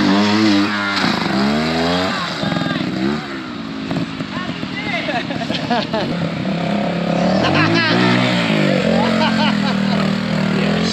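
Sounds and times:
motorcycle engine revving: 0.0 - 10.9.

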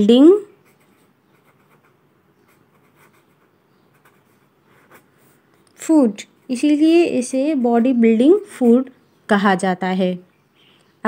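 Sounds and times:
pen scratching on paper: 0.6 - 5.4.

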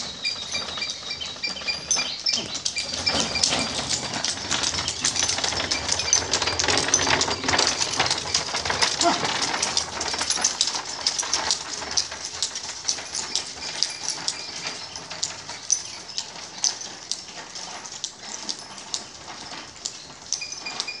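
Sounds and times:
wooden cart clattering: 0.0 - 21.0.

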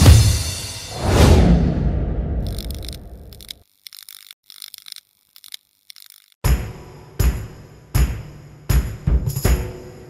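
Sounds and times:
high clock-like clicks: 2.4 - 6.4.

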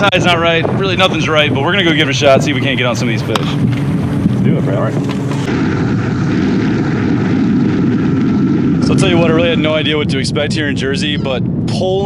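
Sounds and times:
boat engine droning: 0.0 - 12.0
rushing wind and water: 0.0 - 12.0.

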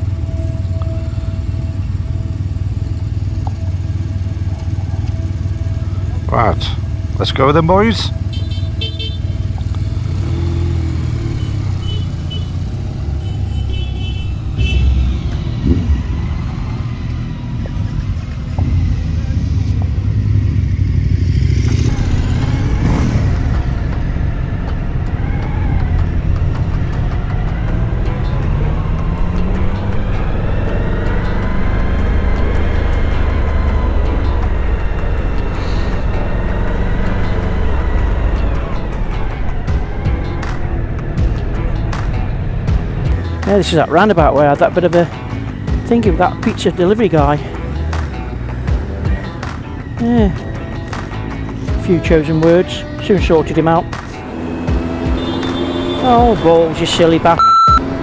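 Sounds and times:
background music: 0.0 - 58.0
motorcycle engines pulling away: 0.0 - 58.0.

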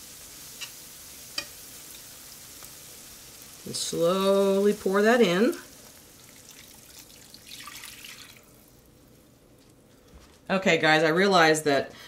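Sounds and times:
liquid pouring and splashing: 6.0 - 8.9.

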